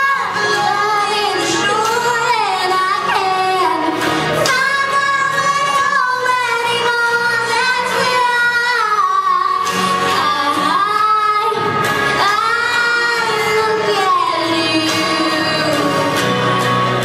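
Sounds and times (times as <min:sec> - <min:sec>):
girl singing into a microphone: 0:00.0 - 0:16.5.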